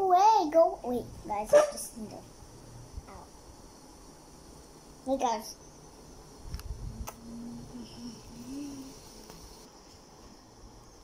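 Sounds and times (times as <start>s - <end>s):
faint distant voice-like hum: 6.8s - 9.6s.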